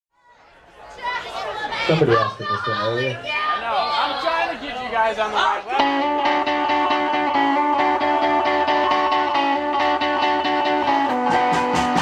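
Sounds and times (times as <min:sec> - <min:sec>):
people chattering: 0:00.2 - 0:11.8.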